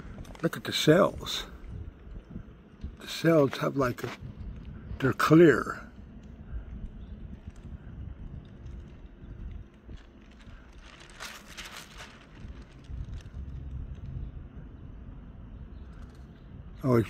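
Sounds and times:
faint clicks: 0:05.9 - 0:10.8
canvas handling rumble: 0:08.6 - 0:14.0.

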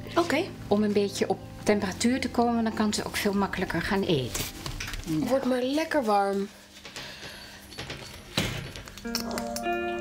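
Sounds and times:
background music with held notes: 0:00.0 - 0:05.2, 0:09.0 - 0:10.0.

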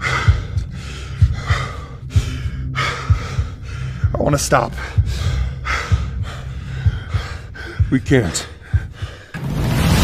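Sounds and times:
person breathing hard: 0:00.0 - 0:09.4.

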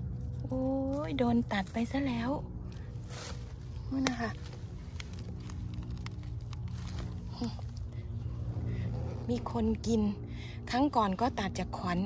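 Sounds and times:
steady low rumble: 0:00.0 - 0:12.0
woman speaking: 0:00.4 - 0:02.5, 0:03.9 - 0:04.5, 0:09.2 - 0:12.0
faint small clicks and crackles: 0:02.6 - 0:09.0.

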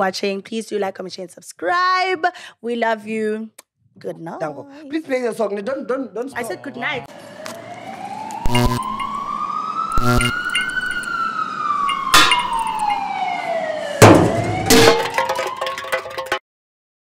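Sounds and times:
gliding siren-like tone: 0:06.4 - 0:15.0
heavy metallic clanks: 0:11.8 - 0:13.0.

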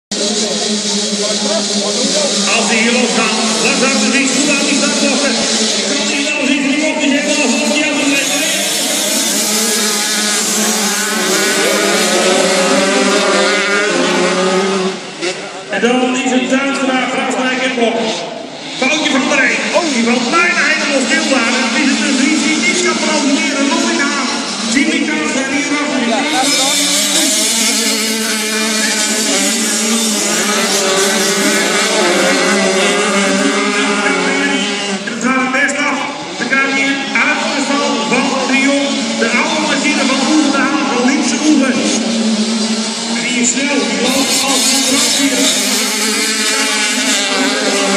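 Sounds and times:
racing motorcycles at full throttle: 0:00.1 - 0:47.9.

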